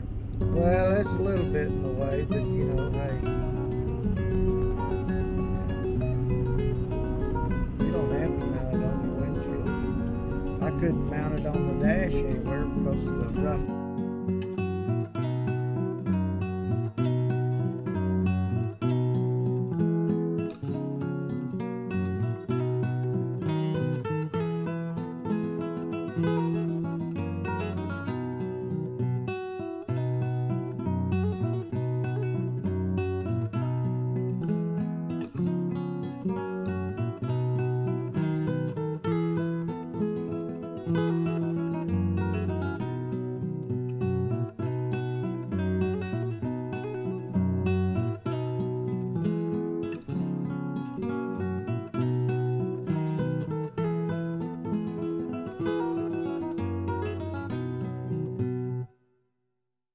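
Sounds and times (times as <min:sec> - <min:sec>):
acoustic guitar music: 0:00.0 - 0:59.1.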